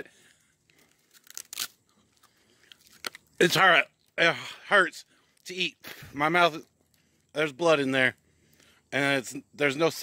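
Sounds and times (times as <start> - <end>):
faint chewing crunch: 0.2 - 4.2.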